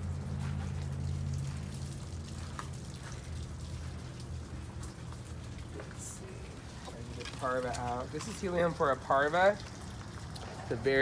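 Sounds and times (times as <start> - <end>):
low machine hum: 0.0 - 11.0
faint ticks and patters: 0.4 - 8.8.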